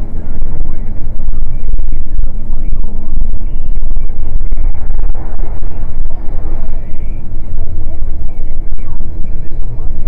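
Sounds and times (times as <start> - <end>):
truck engine and road rumble: 0.0 - 10.0.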